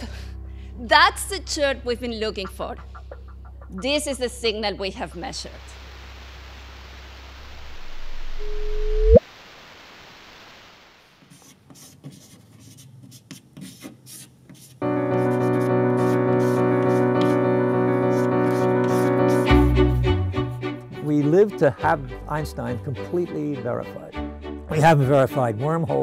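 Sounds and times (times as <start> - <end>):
chalk tapping on blackboard: 11.2 - 17.4, 18.0 - 19.7.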